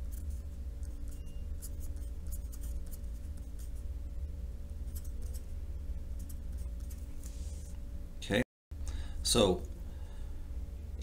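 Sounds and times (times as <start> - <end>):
steady low hum: 0.0 - 11.0
pen scratching on paper: 0.1 - 3.7.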